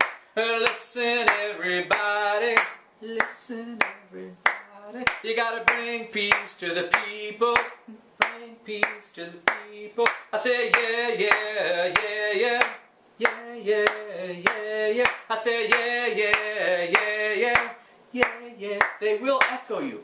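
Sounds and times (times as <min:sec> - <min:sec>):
hands clapping: 0:00.0 - 0:19.6
man singing call-and-response song: 0:00.0 - 0:20.0.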